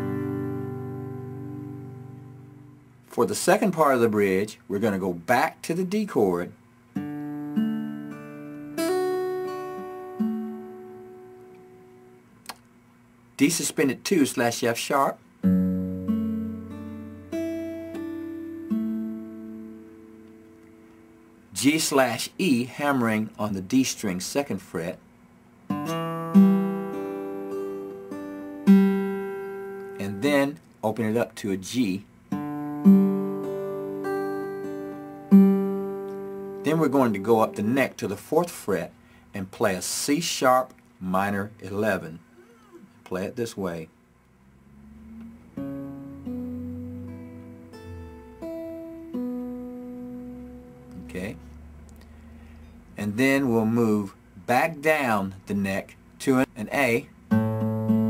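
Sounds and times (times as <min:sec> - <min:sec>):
clean electric guitar chord: 0:00.0 - 0:02.8, 0:07.0 - 0:12.2, 0:15.4 - 0:21.4, 0:25.7 - 0:30.3, 0:32.3 - 0:37.8, 0:45.5 - 0:51.5.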